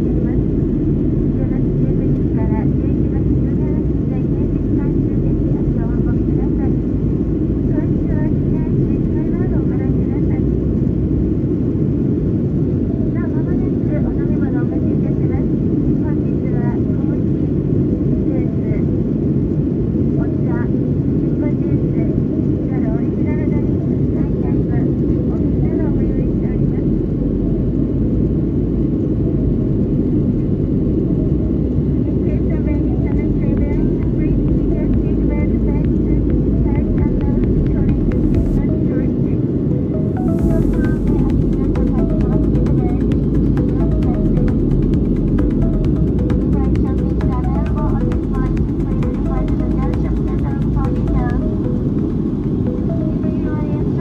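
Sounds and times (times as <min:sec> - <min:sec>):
airliner cabin engine roar: 0:00.0 - 0:54.0.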